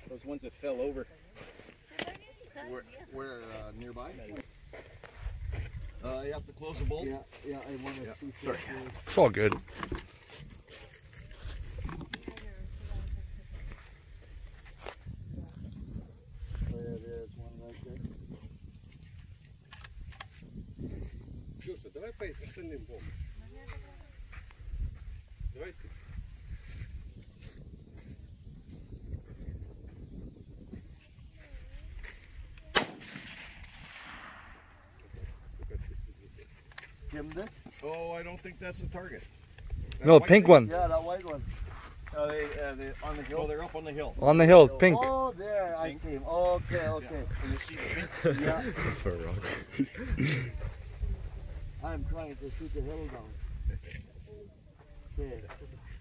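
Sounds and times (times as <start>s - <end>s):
wind rumbling on microphone: 4.4s - 7.4s, 8.6s - 37.6s, 38.3s - 40.0s, 40.6s - 44.2s, 45.2s - 56.0s
rifle shot: 32.7s - 35.0s
quiet talk: 45.0s - 56.0s.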